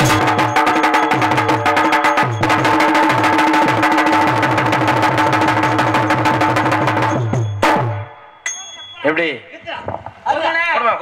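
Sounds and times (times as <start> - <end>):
hand drums in fast rhythm: 0.0 - 8.1.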